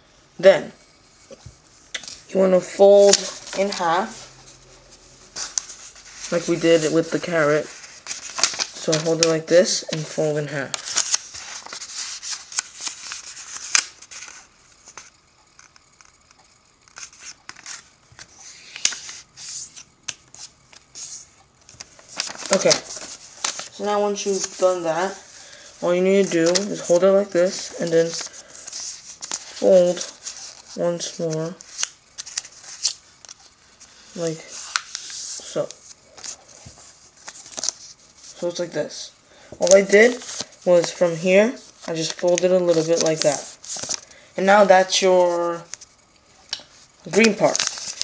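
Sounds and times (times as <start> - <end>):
paper rustling and crinkling: 1.4 - 38.7, 39.5 - 48.0.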